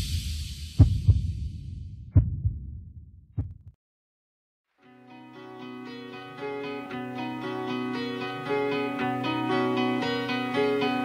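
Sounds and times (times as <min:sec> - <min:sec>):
heartbeat thumps: 0:00.7 - 0:03.8
low rumble: 0:00.8 - 0:03.7.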